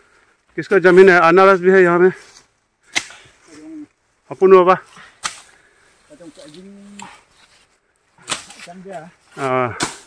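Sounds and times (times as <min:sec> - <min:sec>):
machete chop: 0:05.2 - 0:05.5, 0:08.2 - 0:08.7, 0:09.8 - 0:10.0.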